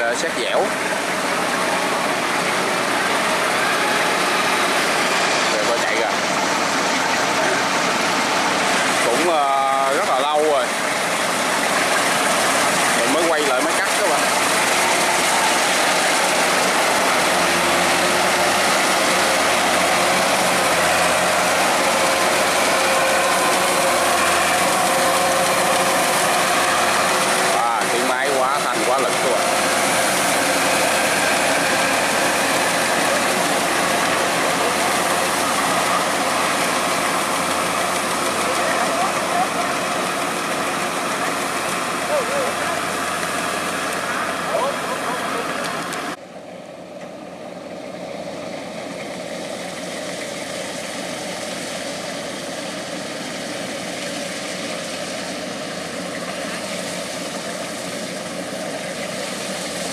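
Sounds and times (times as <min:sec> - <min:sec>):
combine harvester engine under load: 0:00.0 - 0:59.9.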